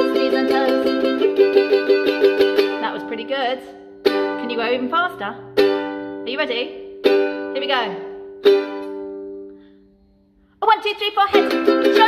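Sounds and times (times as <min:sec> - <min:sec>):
ukulele chord strummed: 0:00.0 - 0:09.7, 0:11.1 - 0:12.0.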